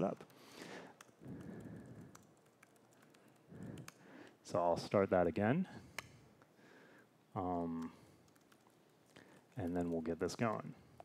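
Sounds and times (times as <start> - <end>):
computer keyboard keystrokes: 0.0 - 4.0, 7.8 - 11.0.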